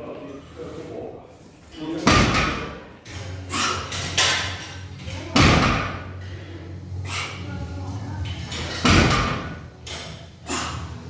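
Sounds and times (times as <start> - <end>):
barbell plates hitting floor: 8.8 - 9.6.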